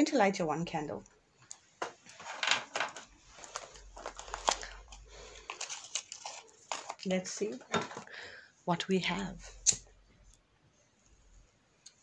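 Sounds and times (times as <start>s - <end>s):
crinkling and rustling: 1.4s - 8.2s.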